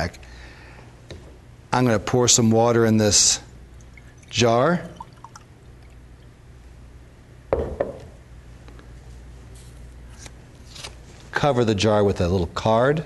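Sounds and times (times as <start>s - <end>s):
water trickling into a jar: 3.8s - 6.3s
pitcher knocking on bench: 7.5s - 8.1s.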